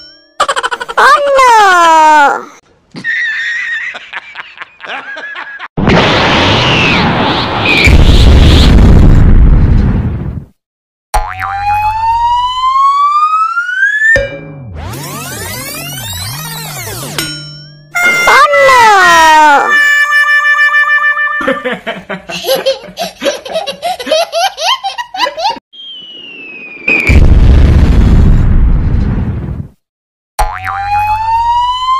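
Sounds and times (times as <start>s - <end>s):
toddler laughing: 0.4s - 1.4s, 22.3s - 25.6s
cartoon explosion: 5.8s - 10.5s, 18.0s - 20.2s, 25.8s - 29.7s
rising whistle glide: 25.7s - 27.2s.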